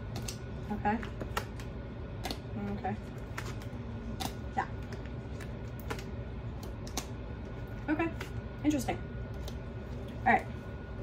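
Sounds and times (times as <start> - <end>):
low steady room hum: 0.0 - 11.0.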